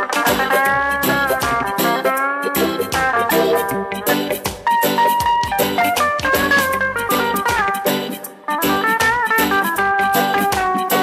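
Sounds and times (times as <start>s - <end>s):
drum beat: 0.0s - 8.2s
electric guitar: 0.0s - 11.0s
keyboard: 0.0s - 11.0s.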